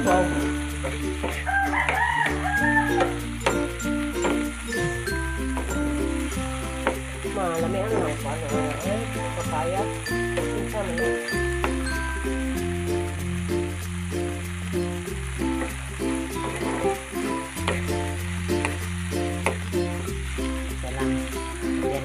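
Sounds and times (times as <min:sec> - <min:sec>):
background music: 0:00.0 - 0:22.0
food sizzling in a pan: 0:00.0 - 0:22.0
spatula ticking against pan: 0:01.2 - 0:04.5.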